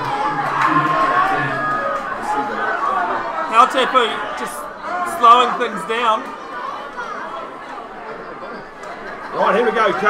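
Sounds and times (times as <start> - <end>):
faint voices chattering: 0.0 - 10.0.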